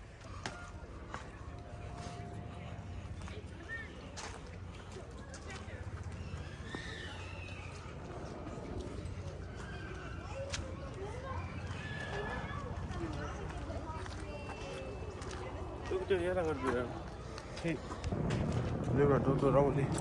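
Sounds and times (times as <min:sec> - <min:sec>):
distant people talking: 0:00.0 - 0:20.0
steady low rumble: 0:00.1 - 0:06.6, 0:07.5 - 0:09.6, 0:16.9 - 0:20.0.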